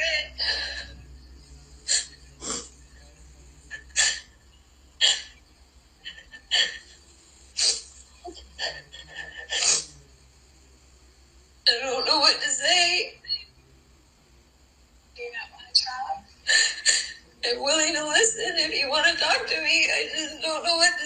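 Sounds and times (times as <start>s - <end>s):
woman crying and sniffing: 7.6s - 9.9s.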